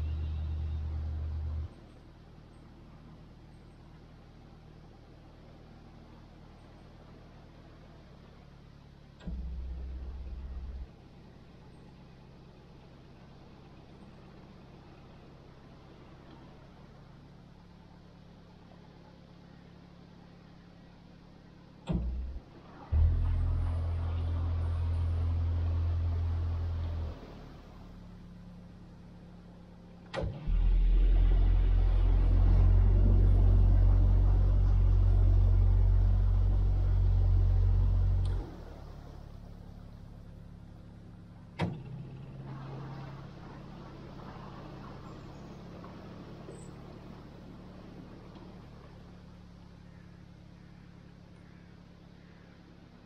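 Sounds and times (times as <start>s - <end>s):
boat diesel engine: 0.0s - 53.0s
sharp click or clunk: 21.9s - 22.3s.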